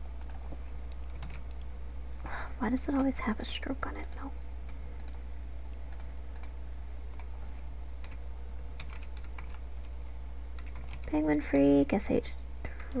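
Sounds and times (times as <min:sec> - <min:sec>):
steady low hum: 0:00.0 - 0:13.0
computer keyboard key clicks: 0:08.8 - 0:09.6, 0:10.6 - 0:11.1.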